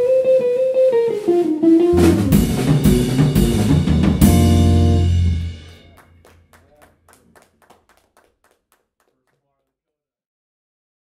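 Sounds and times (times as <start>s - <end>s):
band playing: 0.0s - 6.7s
faint hand clapping: 5.7s - 9.6s.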